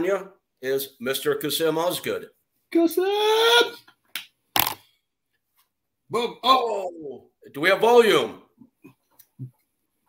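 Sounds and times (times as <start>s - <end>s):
man shouting a drawn-out call: 2.9s - 3.9s.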